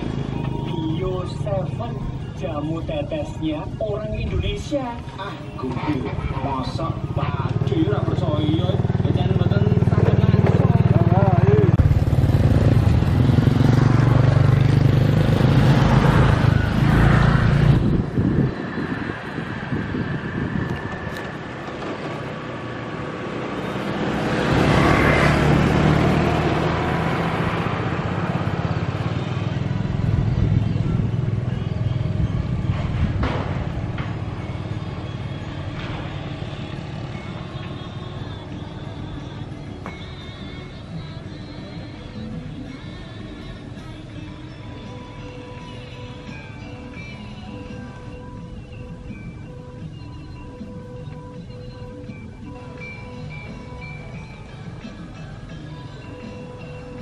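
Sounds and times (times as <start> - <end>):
vehicle engine running loudly: 0.0 - 2.4, 6.0 - 39.6
motor scooter passing: 0.0 - 3.1, 5.0 - 41.2
road traffic: 0.0 - 57.0.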